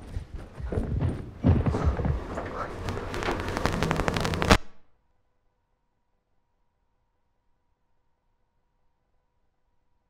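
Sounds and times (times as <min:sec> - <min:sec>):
hurried footsteps: 0:00.0 - 0:04.0.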